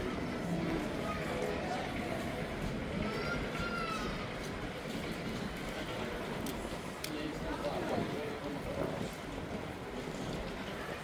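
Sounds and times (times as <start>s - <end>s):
busy street noise: 0.0s - 11.0s
voices of passers-by: 0.0s - 11.0s.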